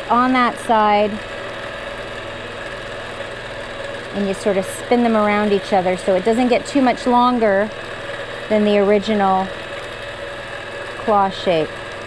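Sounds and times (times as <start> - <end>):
motor hum: 0.0 - 12.0
sewing machine needle rhythm: 3.5 - 10.1.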